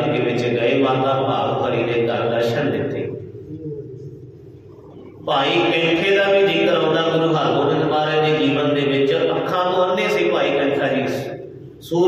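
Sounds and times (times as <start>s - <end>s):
soft low drone of held tones: 0.0s - 6.4s.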